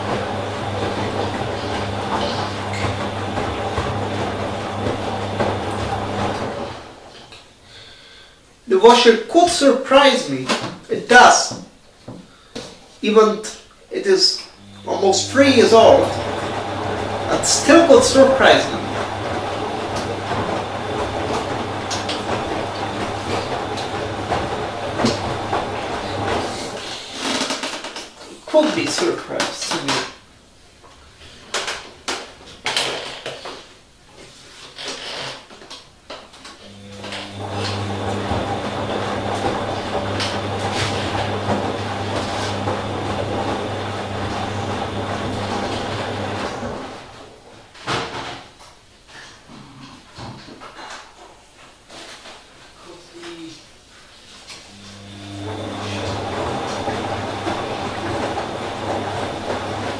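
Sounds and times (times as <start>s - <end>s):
washing machine motor humming: 0.0s - 7.4s, 14.4s - 27.7s, 36.6s - 47.5s, 54.5s - 59.9s
laundry knocking in drum: 17.9s - 26.7s.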